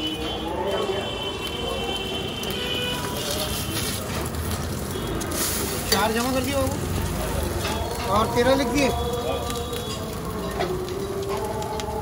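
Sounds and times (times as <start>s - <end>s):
eggs sizzling on griddle: 0.0s - 12.0s
street noise: 0.0s - 12.0s
background voices: 3.0s - 12.0s.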